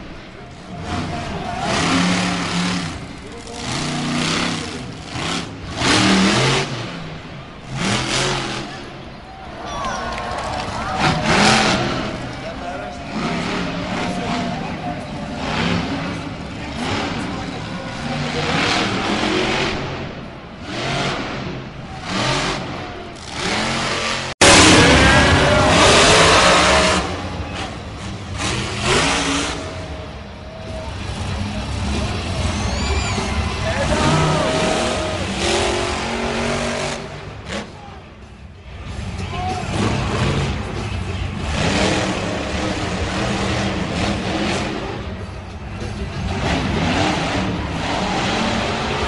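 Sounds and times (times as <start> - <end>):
voices: 0.0 - 23.8, 24.4 - 49.0
truck engines revving: 0.0 - 49.0.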